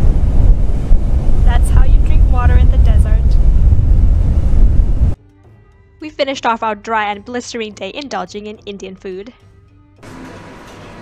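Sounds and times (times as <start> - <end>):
wind buffeting microphone: 0.0 - 5.2
woman's voice: 1.5 - 3.4, 6.0 - 9.4.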